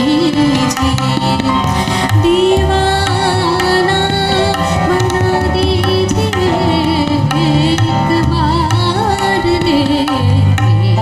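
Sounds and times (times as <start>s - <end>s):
wavering melody line: 0.0s - 10.4s
harmonium and keyboard notes: 0.0s - 11.0s
tabla strokes: 0.0s - 11.0s.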